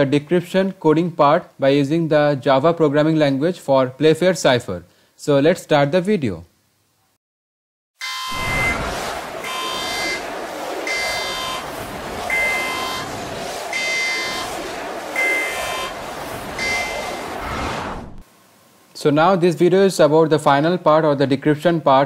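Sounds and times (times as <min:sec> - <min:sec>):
bright horn-like buzzing tone: 0:08.0 - 0:10.2, 0:15.2 - 0:16.0, 0:16.6 - 0:17.2.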